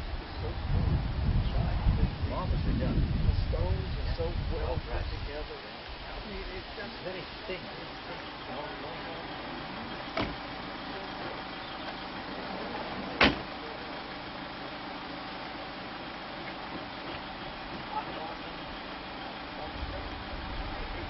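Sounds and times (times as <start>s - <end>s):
outdoor background hiss: 0.0s - 21.0s.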